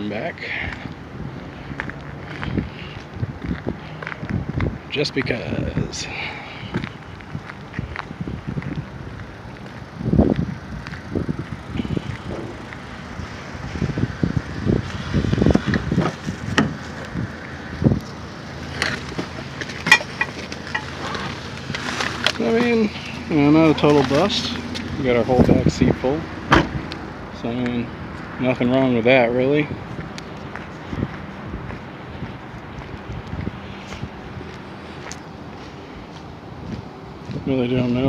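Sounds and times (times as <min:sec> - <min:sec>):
footsteps on asphalt: 0:00.4 - 0:28.7, 0:29.5 - 0:38.0
person's voice: 0:04.9 - 0:06.7, 0:22.3 - 0:26.4, 0:27.3 - 0:29.8, 0:37.4 - 0:38.0.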